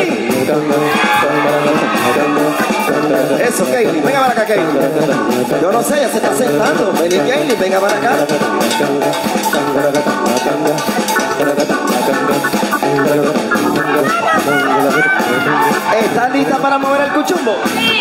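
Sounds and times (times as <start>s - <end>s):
live band playing dance music: 0.0s - 18.0s.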